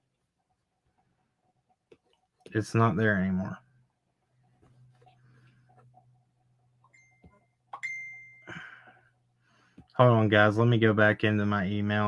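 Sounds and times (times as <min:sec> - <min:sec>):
low steady hum: 0:00.0 - 0:12.0
high ringing chime: 0:06.9 - 0:08.8.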